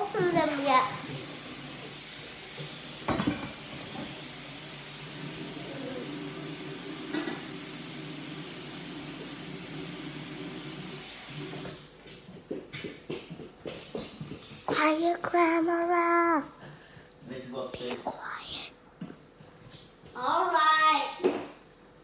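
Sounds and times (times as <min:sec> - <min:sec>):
steady hiss with faint hum: 0:00.0 - 0:12.8, 0:13.7 - 0:22.0.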